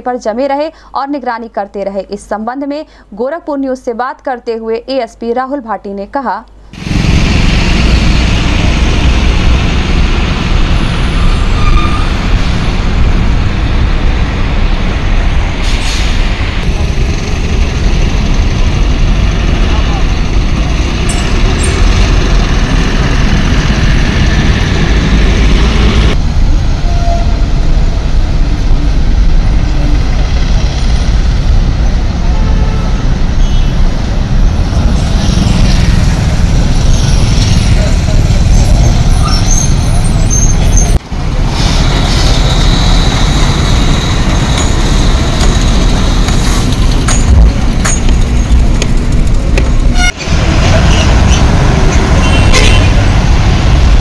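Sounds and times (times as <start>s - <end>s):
heavy traffic rumble: 6.5s - 54.0s.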